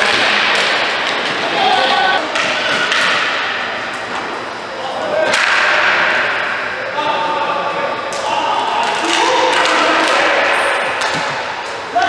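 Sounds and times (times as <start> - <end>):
arena hall din: 0.0 - 12.0.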